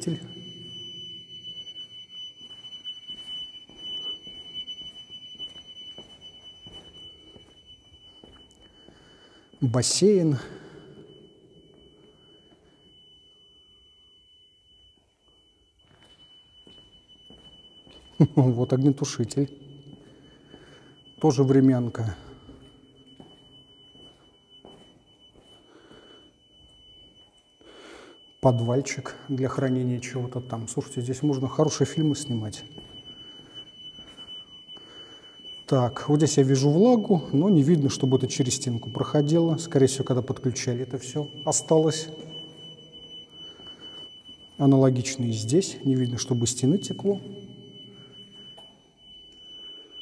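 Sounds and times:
fire alarm continuous tone: 0.0 - 50.0.

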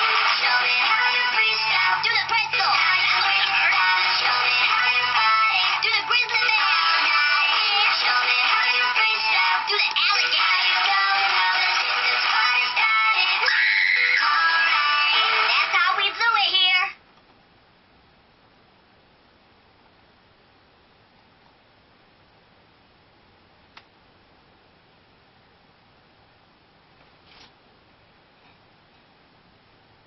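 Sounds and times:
tinny recorded music with singing: 0.0 - 17.0.

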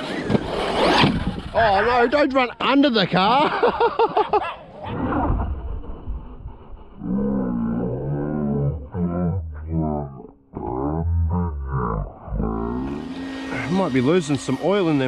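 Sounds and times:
electric motor whine revving: 12.2 - 15.0.

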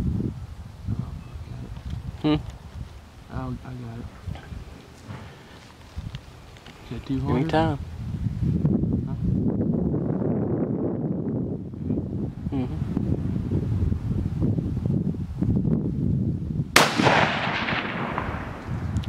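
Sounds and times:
rifle shot with echo: 16.8 - 19.0.

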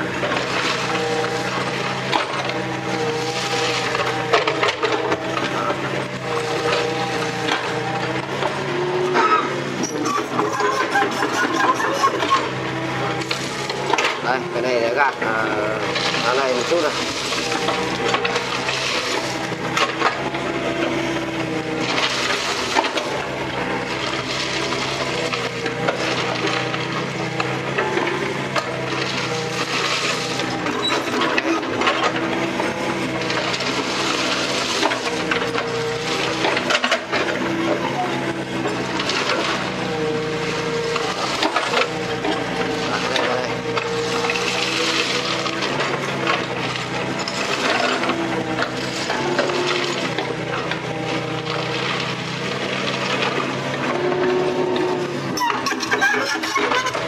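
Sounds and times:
excavator diesel engine running: 0.0 - 57.0
bucket scraping crushed stone: 0.1 - 57.0.

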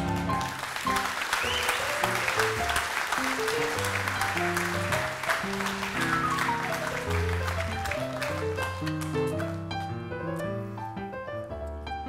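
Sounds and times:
audience applauding: 0.0 - 9.9.

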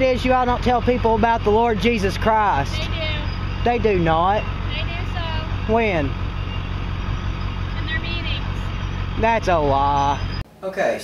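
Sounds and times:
vehicle engine low rumble: 0.0 - 10.4.

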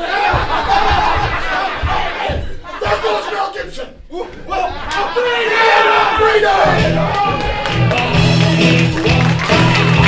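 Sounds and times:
dull thumps: 0.0 - 3.3
people shouting: 0.0 - 7.9.

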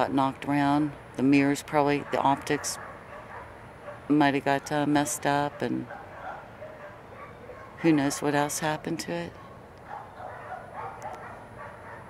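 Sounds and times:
dogs barking faintly: 1.9 - 4.1, 5.0 - 12.0.

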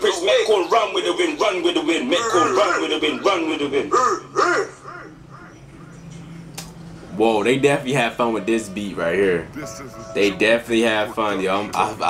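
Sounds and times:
rapping voice with echo: 0.0 - 6.0
low steady hum: 0.0 - 12.0.

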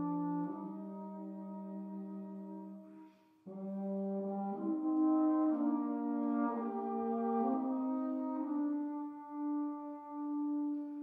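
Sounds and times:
brass ensemble playing chords: 0.0 - 11.0.

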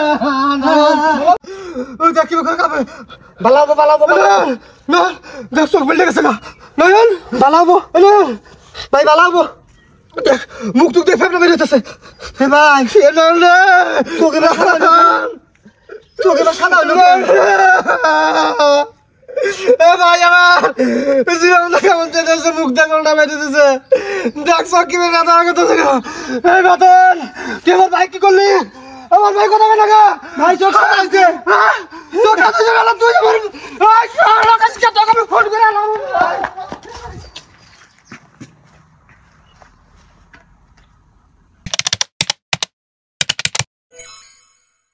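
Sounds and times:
man wailing and crying: 0.0 - 8.4, 12.4 - 36.7
faint outdoor ambience: 0.0 - 41.6
keyboard key clicks: 41.7 - 43.6.

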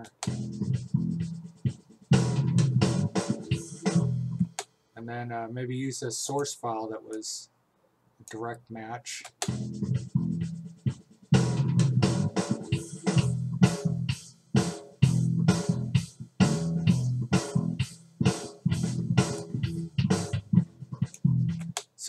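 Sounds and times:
electric bass guitar riff: 0.0 - 1.4, 2.2 - 4.5, 9.5 - 10.7, 11.4 - 14.1, 15.0 - 21.7
programmed drum beat: 0.0 - 4.8, 9.2 - 22.0.

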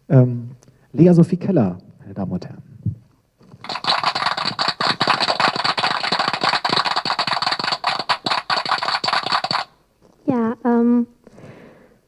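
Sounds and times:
canned applause: 3.6 - 9.7.

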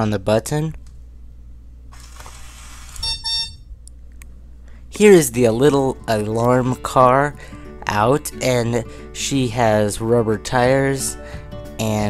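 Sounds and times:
buzzy electronic beeps: 3.0 - 3.7.

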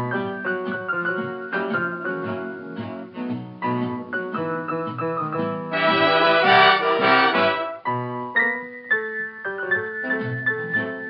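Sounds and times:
dance band playing with piano: 0.0 - 11.0.

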